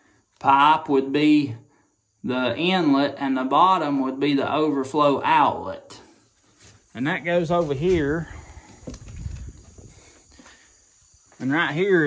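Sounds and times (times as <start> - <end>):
soft footsteps: 6.2 - 11.7
camera handling rumble: 8.6 - 9.9.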